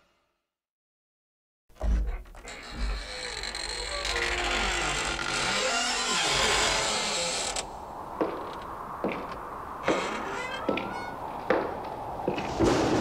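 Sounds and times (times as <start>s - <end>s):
long scratchy creak: 2.0s - 8.6s, 9.8s - 11.5s.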